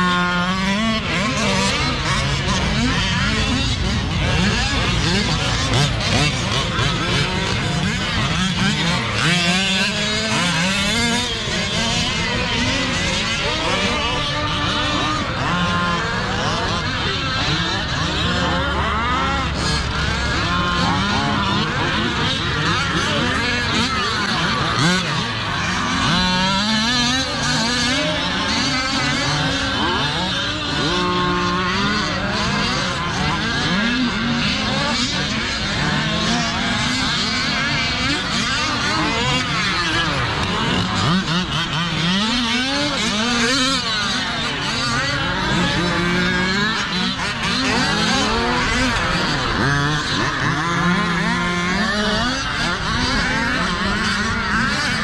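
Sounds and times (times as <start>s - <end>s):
rc car engines revving: 0.0s - 55.0s.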